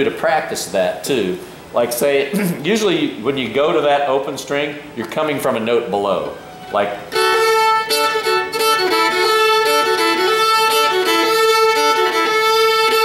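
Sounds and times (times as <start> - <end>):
fiddle bowing double stop: 6.4 - 13.0.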